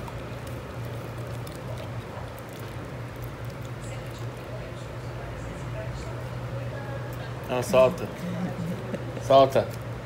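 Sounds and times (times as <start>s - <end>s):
dog licking and chewing: 0.0s - 4.5s
steady low hum: 0.0s - 10.0s.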